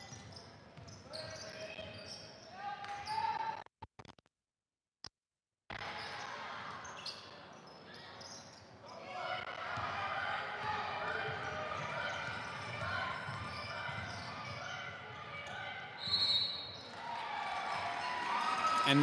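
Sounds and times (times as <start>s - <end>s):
players and spectators voices: 5.7s - 19.0s
basketball bouncing on court: 10.6s - 15.6s.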